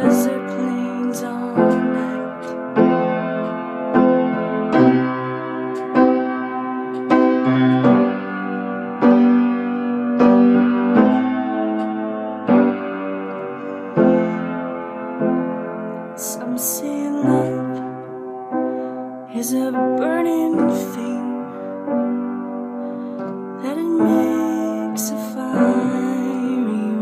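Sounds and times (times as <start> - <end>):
keyboard playing slow chords: 0.0 - 16.2.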